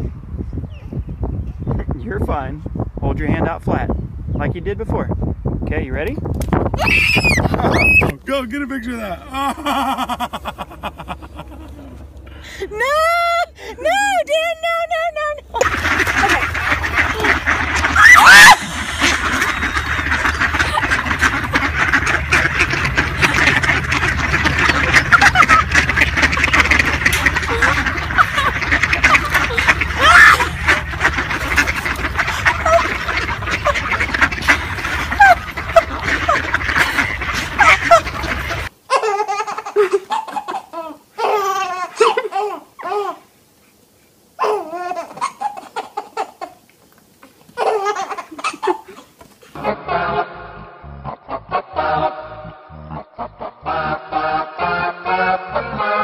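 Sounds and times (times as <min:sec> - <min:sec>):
baby laughing: 0:15.5 - 0:43.2, 0:44.4 - 0:46.6, 0:47.6 - 0:49.2
flock of ducks quacking: 0:15.6 - 0:40.7, 0:49.6 - 0:56.0.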